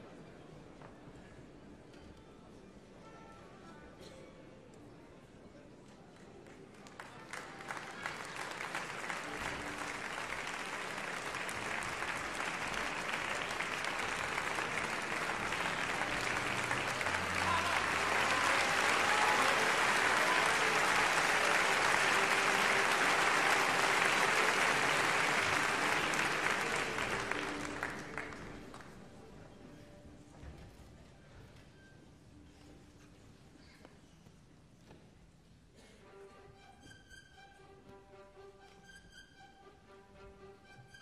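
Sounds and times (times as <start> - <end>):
audience applauding: 6.7 - 29.1.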